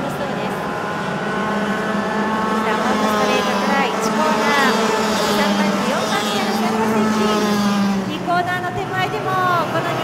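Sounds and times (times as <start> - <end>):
racing kart engines: 0.0 - 10.0.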